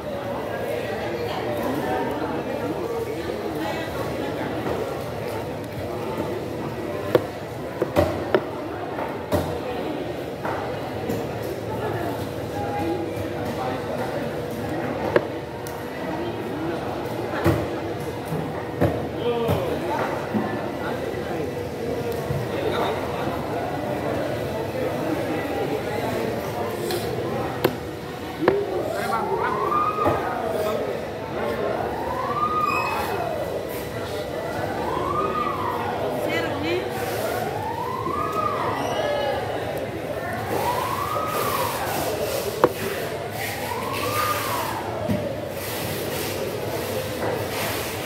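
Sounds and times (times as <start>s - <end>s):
background chatter of voices: 0.0s - 48.0s
siren wailing: 29.0s - 30.5s, 31.7s - 33.6s, 34.4s - 36.5s, 37.2s - 39.4s, 40.4s - 42.2s, 43.5s - 44.9s
knife striking wooden board: 42.6s - 42.8s.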